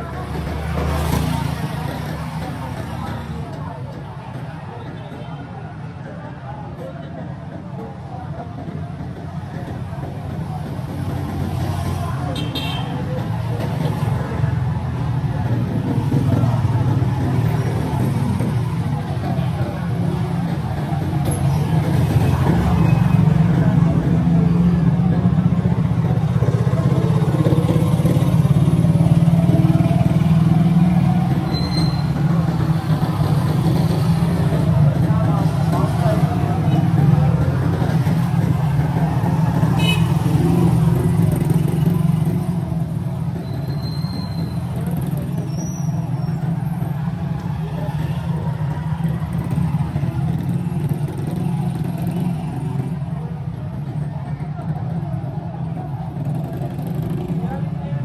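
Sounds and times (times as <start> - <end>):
motorcycle engines running: 0.0 - 58.0
people's voices: 0.0 - 58.0.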